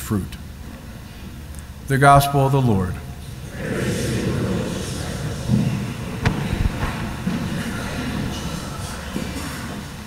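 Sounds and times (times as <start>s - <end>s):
congregation speaking in unison: 1.8s - 10.0s
low thuds: 6.2s - 8.1s.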